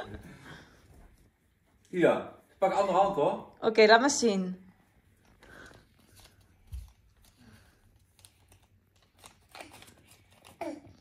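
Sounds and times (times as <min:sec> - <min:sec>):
paper rustling and crinkling: 0:05.6 - 0:11.0.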